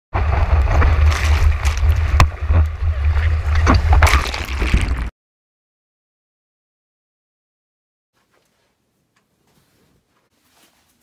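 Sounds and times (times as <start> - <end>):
whitewater splashing: 0.2 - 5.1.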